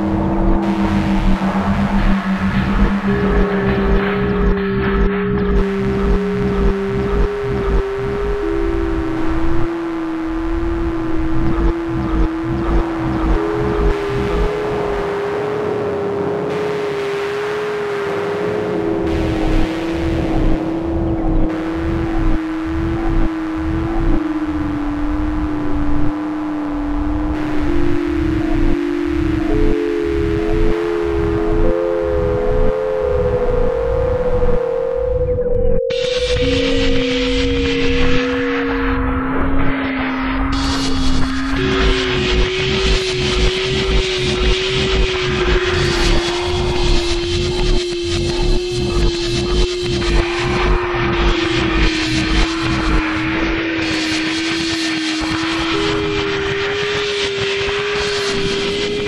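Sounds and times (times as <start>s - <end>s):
irregular low pulses: 0.0s - 59.0s
wavering electronic tone: 0.0s - 59.0s.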